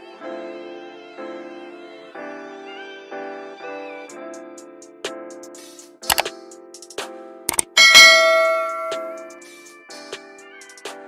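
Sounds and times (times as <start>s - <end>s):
soft background music: 0.0s - 11.0s
bright bell ding: 7.6s - 9.4s.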